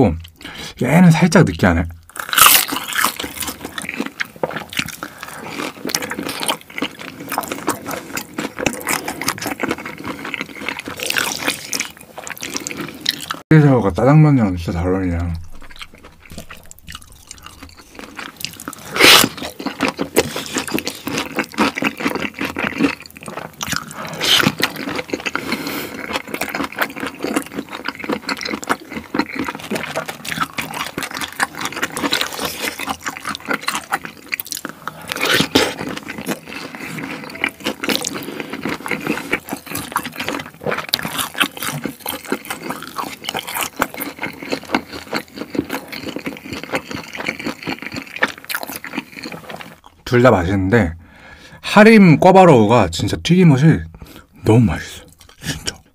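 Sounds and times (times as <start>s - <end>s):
chewing and slurping noodles: 2.1s - 13.4s, 15.4s - 50.0s.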